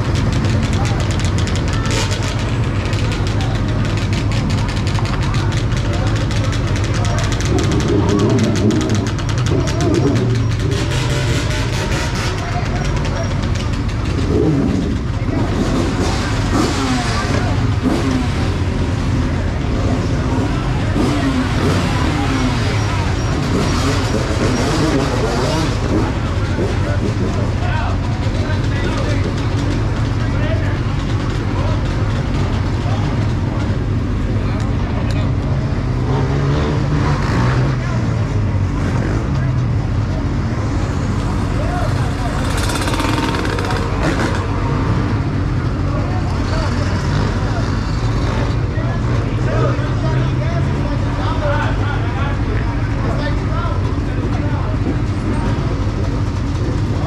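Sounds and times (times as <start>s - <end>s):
dirt bike engines idling: 0.0s - 57.0s
engines revving: 0.0s - 57.0s
people talking: 0.0s - 57.0s.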